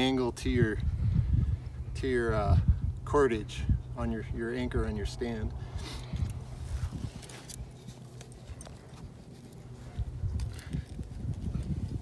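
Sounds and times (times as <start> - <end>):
wind rumble on microphone: 0.0 - 12.0
metal anchor scuffing in sand: 5.7 - 12.0.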